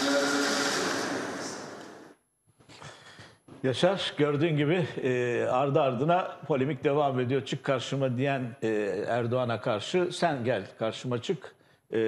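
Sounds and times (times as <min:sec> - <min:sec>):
noisy whoosh: 0:00.0 - 0:02.2.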